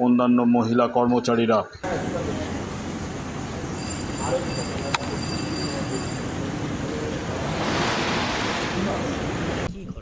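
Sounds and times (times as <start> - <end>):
outdoor background rumble: 1.8 - 9.7
rushing hiss: 1.9 - 9.7.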